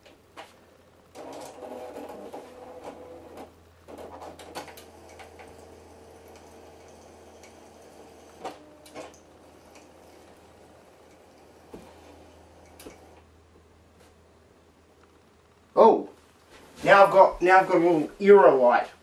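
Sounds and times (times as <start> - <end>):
printer motor whirring: 1.1 - 13.3.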